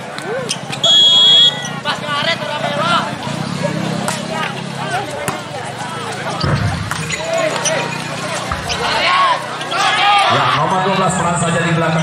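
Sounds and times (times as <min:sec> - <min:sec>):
people shouting and chattering: 0:00.0 - 0:12.0.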